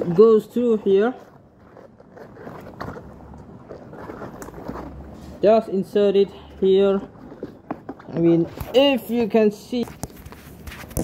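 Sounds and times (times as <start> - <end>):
rubber rubbing and rustling: 0.0 - 11.0.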